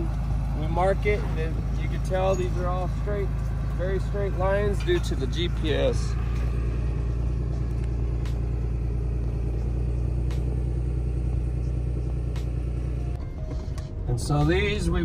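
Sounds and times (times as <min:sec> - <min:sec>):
tractor engine rumbling: 0:00.0 - 0:15.0.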